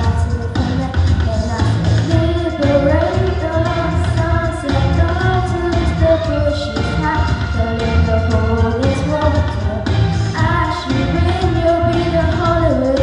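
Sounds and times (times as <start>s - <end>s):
backing track with bass beat: 0.0s - 13.0s
boy singing into a microphone: 0.0s - 13.0s.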